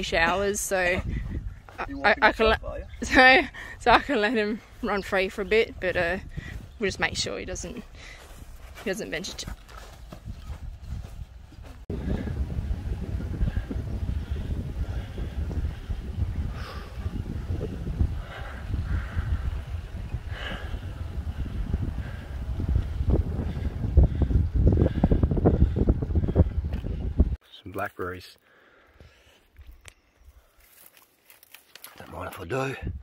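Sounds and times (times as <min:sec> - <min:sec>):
wind buffeting microphone: 0:00.0 - 0:27.4, 0:32.8 - 0:33.0.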